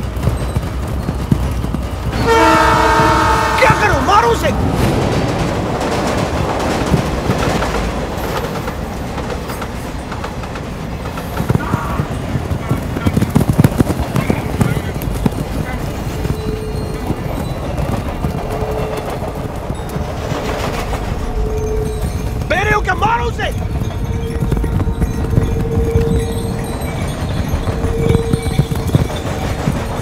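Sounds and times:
camel hoofbeats: 0.0 - 30.0
train running: 0.0 - 30.0.

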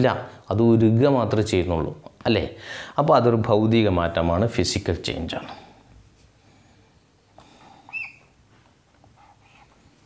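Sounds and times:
whiteboard marker squeaking: 7.9 - 8.4.

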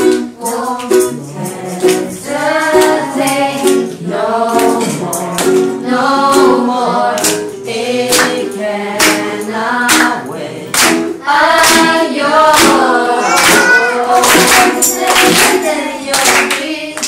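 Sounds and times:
strummed ukuleles and guitar: 0.0 - 16.8
group singing: 0.0 - 17.0.

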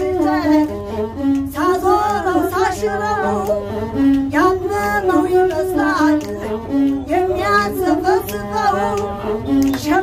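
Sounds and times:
bowed one-string fiddle: 0.0 - 10.0
woman singing in ornamented voice: 0.0 - 10.0.

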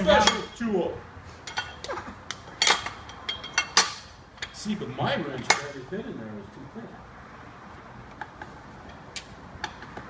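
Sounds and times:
metal tools clinking: 1.4 - 1.8, 2.5 - 4.7.

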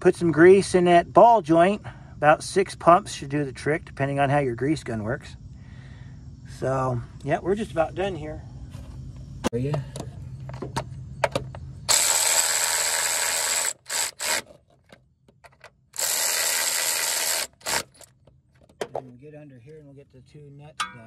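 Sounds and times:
cordless power tool whining: 11.9 - 14.6, 16.0 - 18.2.

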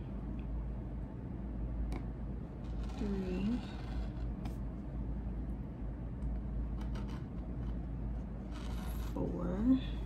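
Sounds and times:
steady low hum: 0.0 - 10.0
rotary cutter scraping through fabric: 2.6 - 4.2, 8.4 - 9.3.

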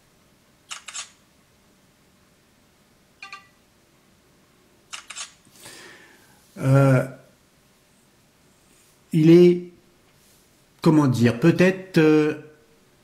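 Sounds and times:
camera shutter double click: 0.7 - 1.2, 4.9 - 5.4.

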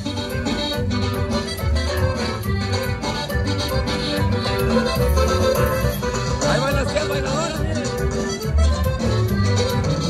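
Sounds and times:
electric bass guitar: 0.0 - 10.0
live latin dance band: 0.0 - 10.0.

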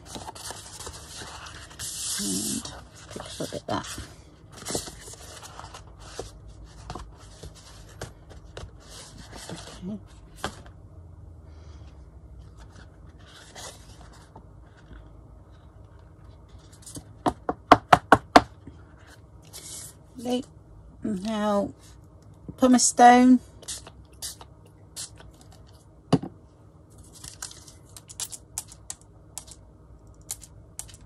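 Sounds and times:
paper rustling and scraping: 0.0 - 10.7, 12.4 - 15.0.

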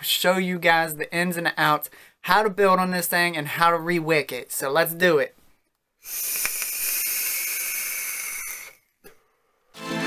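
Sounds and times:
vape draw hissing: 6.0 - 9.0.

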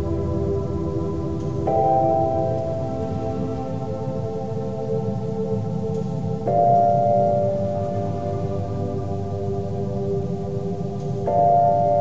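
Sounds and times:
calm music of held tones: 0.0 - 12.0.

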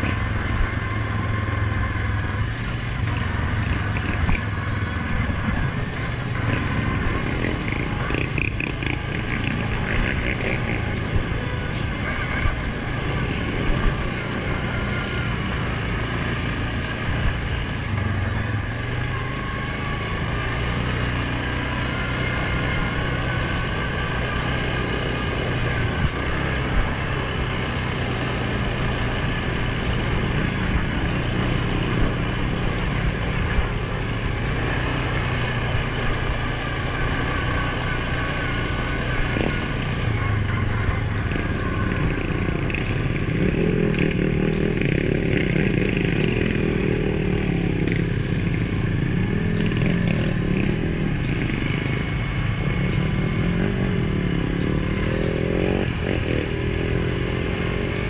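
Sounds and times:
atv engine running: 0.0 - 58.0.

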